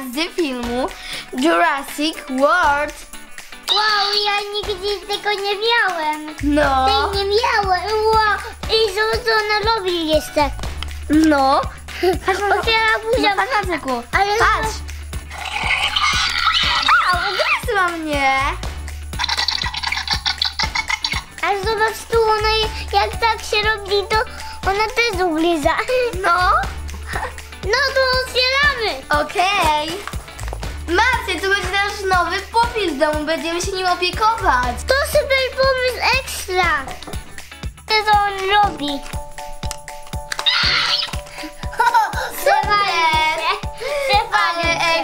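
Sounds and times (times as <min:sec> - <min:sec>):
background music with steady beat: 0:00.0 - 0:45.0
toy dinosaur screech: 0:15.3 - 0:17.6, 0:19.2 - 0:21.3, 0:40.4 - 0:41.2.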